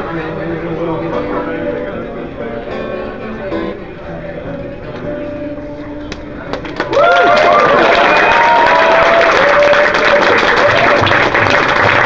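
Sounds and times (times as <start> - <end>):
steel-string acoustic guitar strumming: 0.0 - 6.1.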